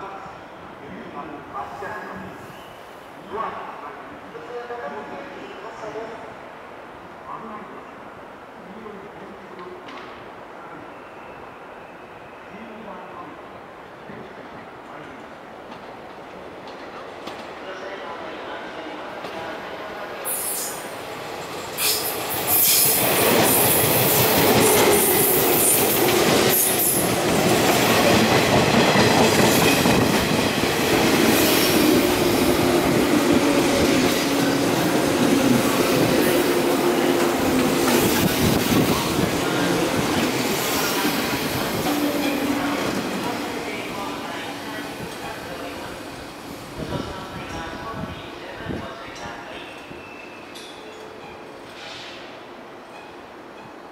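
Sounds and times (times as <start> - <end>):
train rumbling and clacking: 9.5 - 10.4, 14.1 - 17.6, 19.1 - 53.9
train humming: 18.9 - 48.5
train wheels squealing: 21.8 - 23.0, 49.6 - 52.1.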